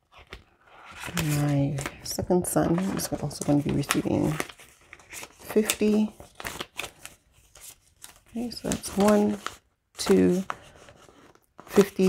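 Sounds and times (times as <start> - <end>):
plastic banknotes flicking and crinkling: 3.0 - 12.0.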